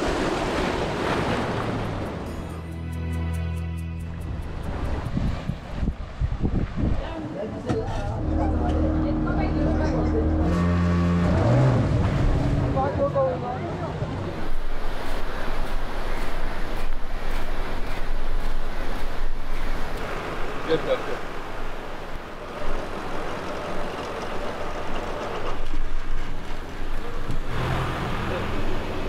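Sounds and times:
surf rushing: 0.0s - 2.7s, 4.3s - 29.0s
wind: 0.0s - 29.0s
beach crowd chatter: 1.2s - 29.0s
motorboat engine running: 7.4s - 20.6s, 21.4s - 29.0s.

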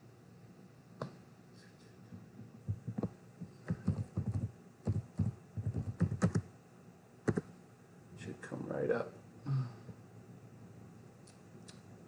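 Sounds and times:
computer keyboard typing: 3.7s - 6.5s.

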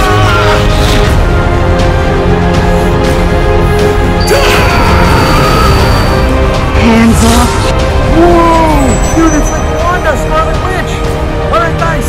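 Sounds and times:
dramatic music score: 0.0s - 12.0s.

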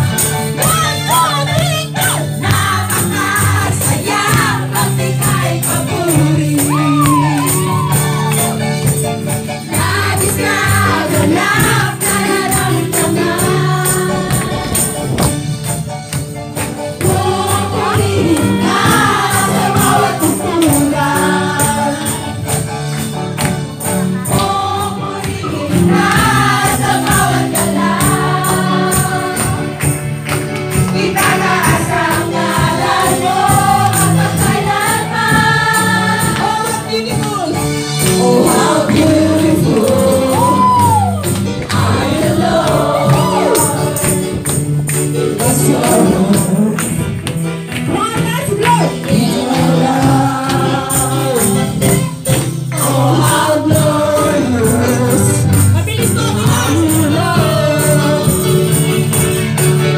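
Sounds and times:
group singing along: 0.0s - 15.9s, 16.5s - 47.3s, 48.8s - 59.4s
electric guitars: 0.0s - 59.9s
high percussion beat: 0.0s - 59.9s
keyboard: 0.0s - 59.9s.

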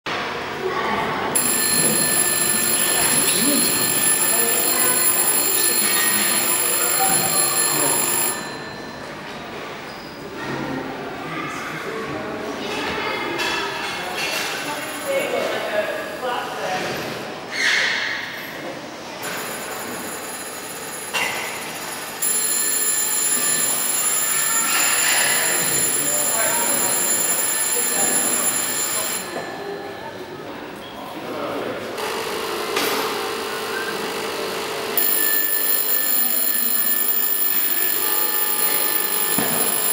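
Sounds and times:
voices in echoing hall: 0.1s - 39.9s
high-pitched ringing tone: 1.4s - 9.2s, 19.2s - 31.1s, 32.8s - 39.9s.

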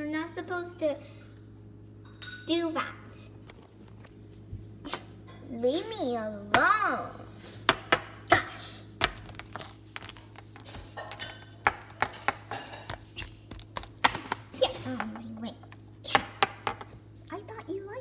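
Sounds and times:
toys tapping on stone countertop: 9.0s - 14.4s, 16.1s - 16.9s.

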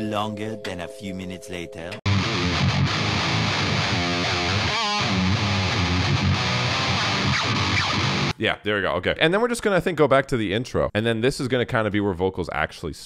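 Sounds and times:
electric guitar metal riff: 2.1s - 8.3s.

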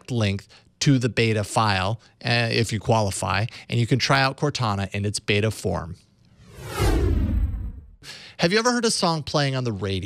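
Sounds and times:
low rumble: 6.3s - 8.0s
falling sweeps: 6.4s - 7.9s
whoosh sound effect: 6.4s - 8.0s.

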